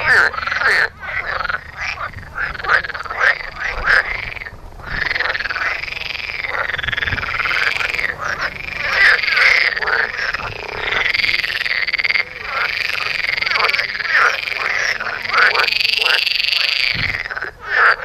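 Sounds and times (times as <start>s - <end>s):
frogs croaking: 0.0s - 18.0s.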